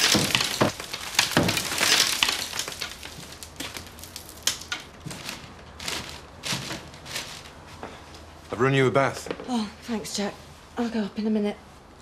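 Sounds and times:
plaster and debris falling: 0.0 - 7.6.

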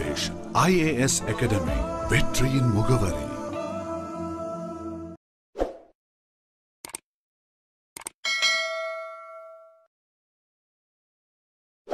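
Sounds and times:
double mouse click: 6.8 - 7.0
notification bell ding: 8.3 - 9.9.

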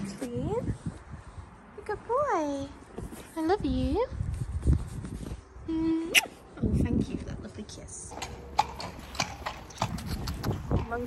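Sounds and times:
horse clicks and knocks: 8.1 - 11.0.

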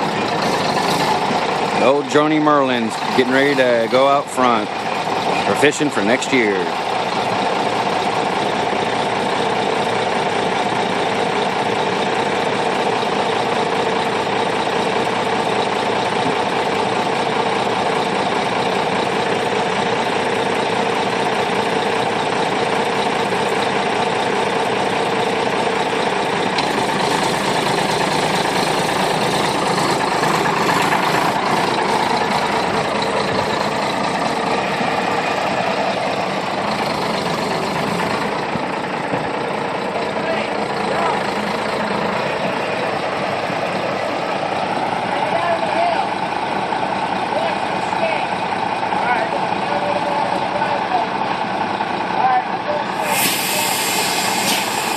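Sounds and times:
truck diesel engine running: 0.0 - 54.9.

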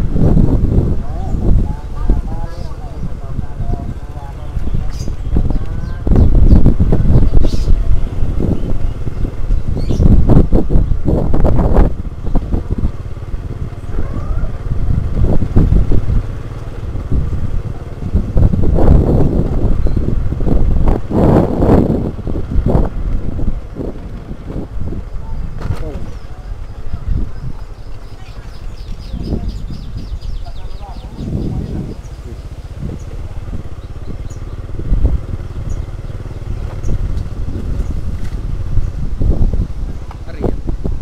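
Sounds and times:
motorcycle engine running: 0.0 - 41.0
wind buffeting microphone: 0.0 - 41.0.

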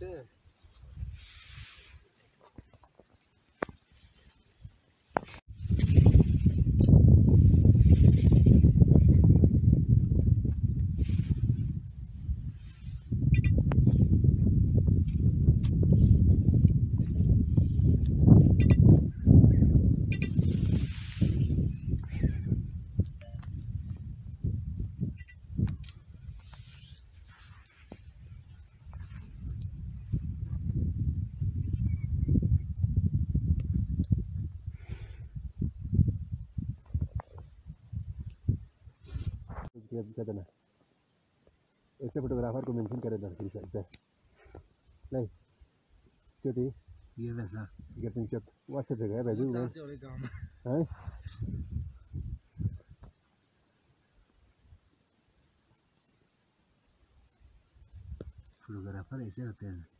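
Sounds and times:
wind buffeting microphone: 5.2 - 39.7, 49.7 - 53.1.

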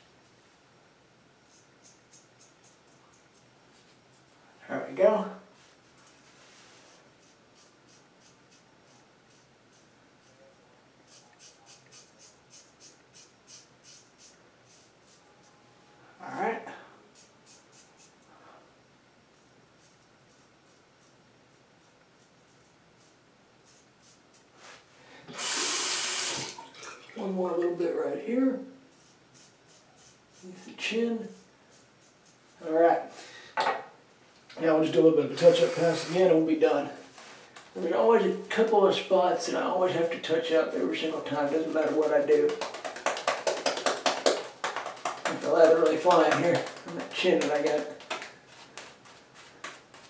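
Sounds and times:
razor scraping stubble: 40.2 - 42.6, 45.3 - 50.0.

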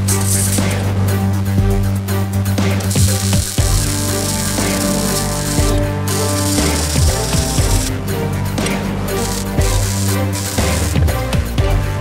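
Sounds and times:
background music with bass: 0.0 - 12.0
arc welding crackle: 0.1 - 0.8, 2.7 - 8.0, 8.6 - 11.4.

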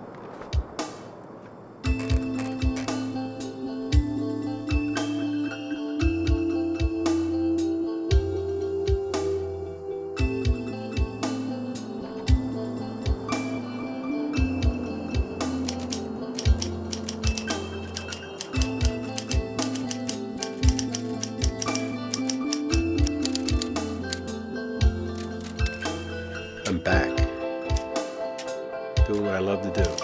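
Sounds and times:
background music: 0.4 - 30.0
typewriter keys clacking: 29.8 - 30.0.

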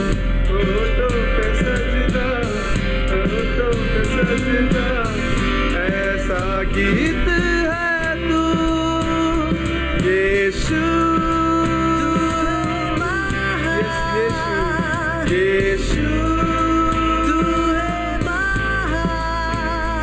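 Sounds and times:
live band playing worship song: 0.0 - 20.0
man singing: 0.0 - 20.0.

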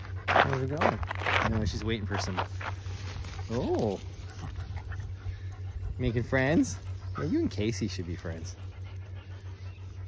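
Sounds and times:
dog panting: 0.0 - 1.0, 3.8 - 10.0
steady low rumble: 0.0 - 10.0.

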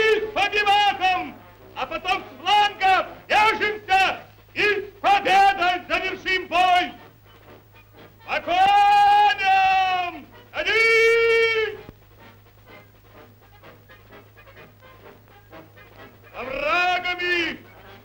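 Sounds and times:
man shouting long held calls: 0.0 - 7.0, 8.3 - 11.9, 16.3 - 17.7
faint low patter: 10.2 - 16.6.

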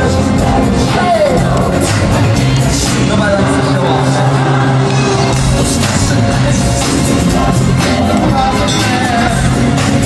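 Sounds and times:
live pop band with horns: 0.0 - 10.0.

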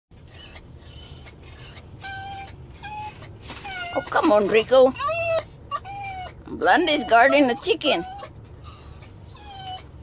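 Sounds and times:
low steady rumble: 0.2 - 10.0
small dog whimpering: 0.2 - 10.0.

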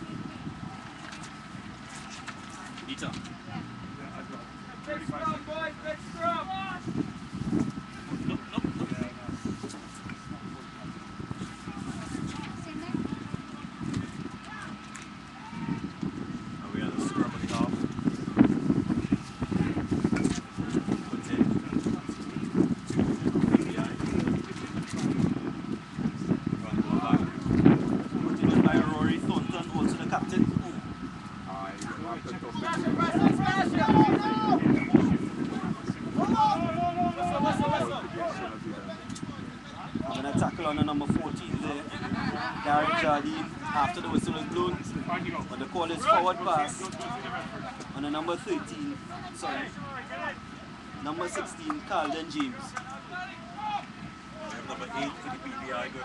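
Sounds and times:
wind rumbling on microphone: 0.0 - 4.0, 4.8 - 52.7
people talking and calling: 0.0 - 56.0.

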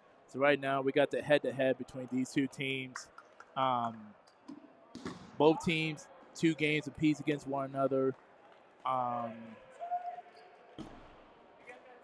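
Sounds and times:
ball bouncing on hardwood floor: 5.0 - 5.3.

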